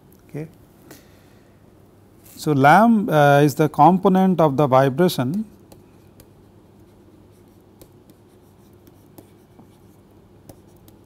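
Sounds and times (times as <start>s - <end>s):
steady low hum: 0.0s - 11.0s
stylus tapping on pen tablet: 5.3s - 6.5s, 7.4s - 11.0s.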